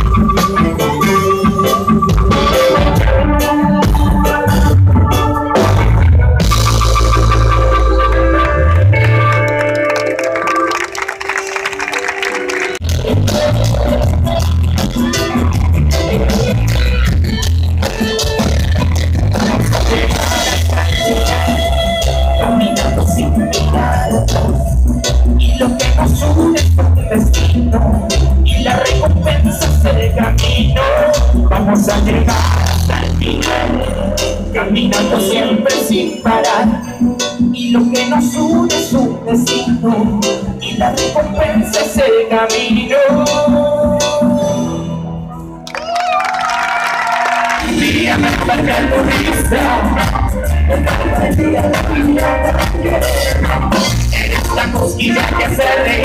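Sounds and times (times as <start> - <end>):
drums: 0.0 - 45.0, 45.7 - 56.0
reggae band holding a chord: 0.0 - 45.7, 47.1 - 56.0
bass guitar: 0.0 - 46.5, 47.4 - 56.0
electric guitar: 0.0 - 56.0
crowd cheering: 6.8 - 14.0, 45.6 - 50.4.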